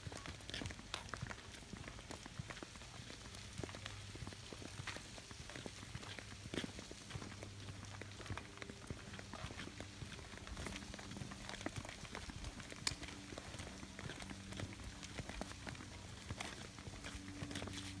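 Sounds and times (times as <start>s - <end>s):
flip-flop footsteps on stone: 0.0s - 18.0s.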